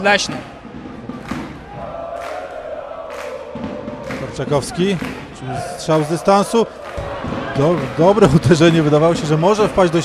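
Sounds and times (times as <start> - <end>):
crowd noise: 0.0 - 10.0
football crowd chanting: 1.4 - 8.1.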